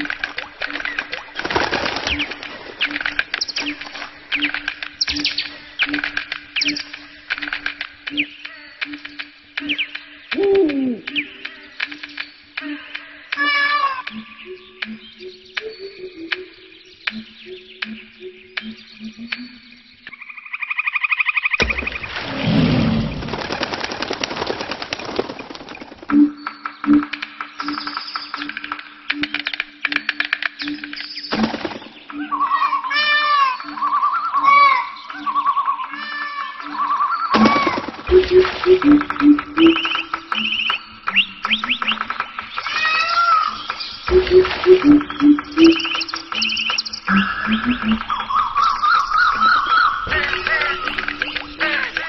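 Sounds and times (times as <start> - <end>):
birds chirping: 0.0 - 52.0.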